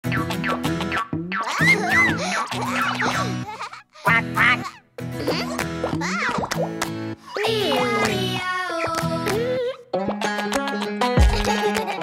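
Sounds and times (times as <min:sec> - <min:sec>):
cartoon soundtrack music: 0:00.0 - 0:12.0
cartoon vocal sound effect: 0:01.4 - 0:03.3, 0:04.0 - 0:06.6, 0:07.3 - 0:09.9.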